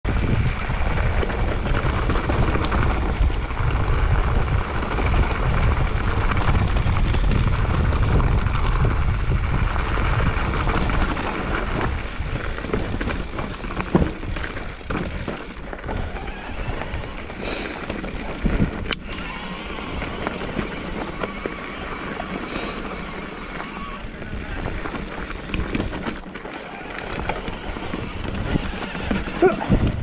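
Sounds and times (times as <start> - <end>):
wind buffeting microphone: 0.0 - 21.5, 23.8 - 26.2, 27.0 - 30.0
bike tyres crunching on gravel: 0.1 - 29.9
bike rattling over stones: 0.1 - 30.0.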